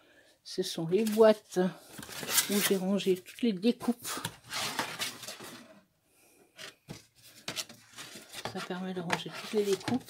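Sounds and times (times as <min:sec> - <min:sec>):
plastic cases scraping and sliding: 0:01.9 - 0:03.0, 0:04.0 - 0:05.8, 0:06.6 - 0:10.0.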